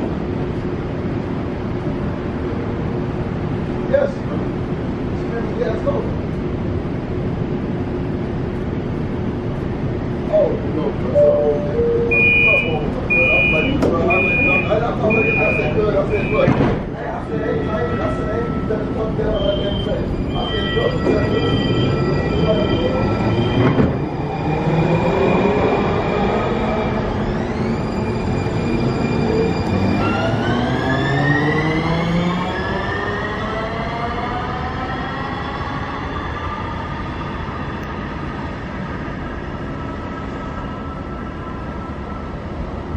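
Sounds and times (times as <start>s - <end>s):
short beeps: 10.3s - 16.5s, 18.0s - 23.7s
electric train drives whining: 17.4s - 42.9s.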